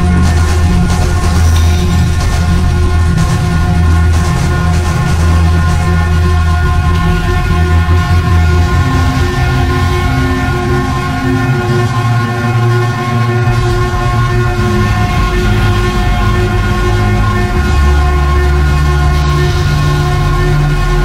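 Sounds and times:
loud bass drone: 0.0s - 21.0s.

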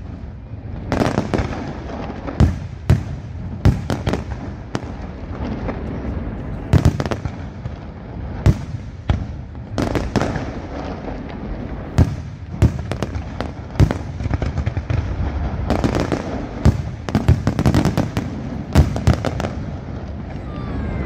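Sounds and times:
firework crackle and rumble: 0.0s - 21.0s.

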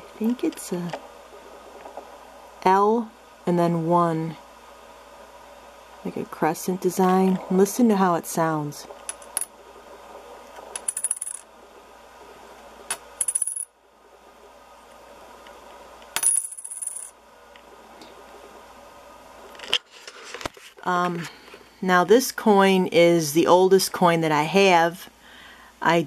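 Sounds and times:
coin clattering on marble: 9.1s - 9.5s, 10.7s - 11.5s, 12.9s - 13.7s, 16.1s - 17.2s
high clear coin ring: 10.8s - 11.5s, 12.9s - 13.8s, 16.1s - 17.2s.

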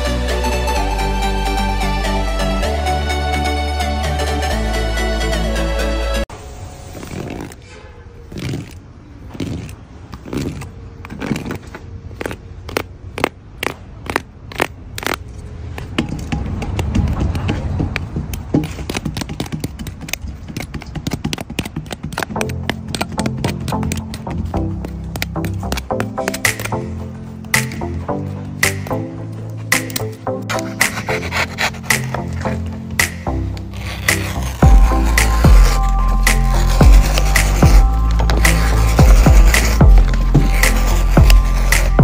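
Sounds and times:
background music with steady beat: 0.0s - 6.2s, 22.2s - 42.0s
rubbing scraping sound: 6.8s - 28.0s, 28.6s - 42.0s
metal spoon scraping under buns: 33.6s - 42.0s.

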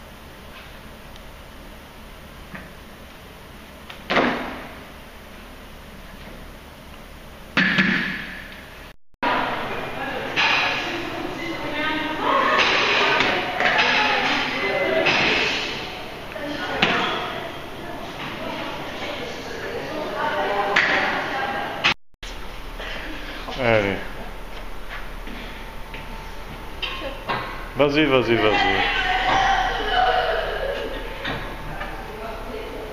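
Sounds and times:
indistinct voices talking: 9.2s - 21.8s, 25.1s - 32.9s.

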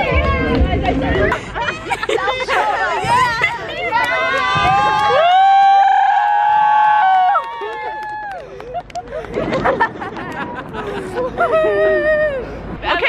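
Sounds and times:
young people screaming: 4.5s - 8.3s.

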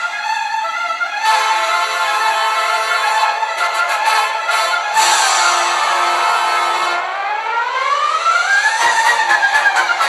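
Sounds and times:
siren-like wailing tone: 4.8s - 10.0s.

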